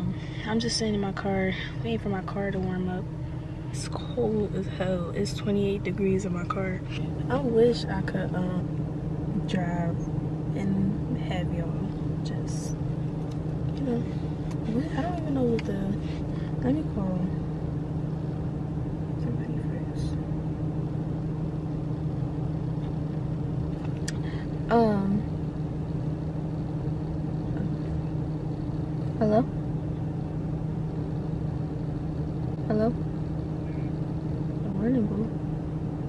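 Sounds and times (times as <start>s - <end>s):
car idling low hum: 0.0s - 36.0s.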